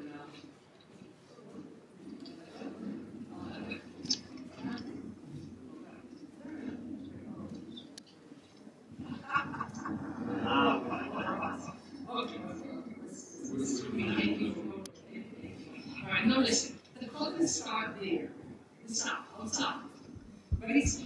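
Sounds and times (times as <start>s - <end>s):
tour guide talking: 9.0s - 18.3s, 20.6s - 21.0s.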